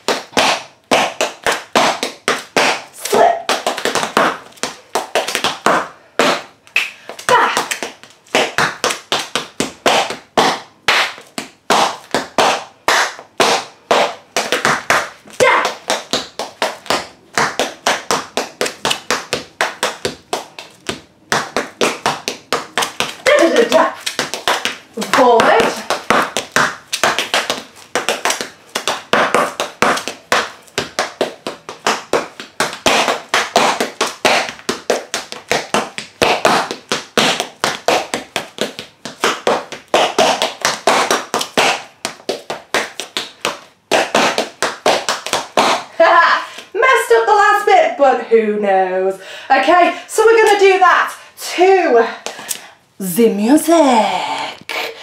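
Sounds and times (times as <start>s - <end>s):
tap shoes clicking on tile: 0.0s - 46.7s, 52.1s - 52.7s
person speaking: 23.2s - 24.0s, 24.9s - 25.9s, 53.0s - 55.0s.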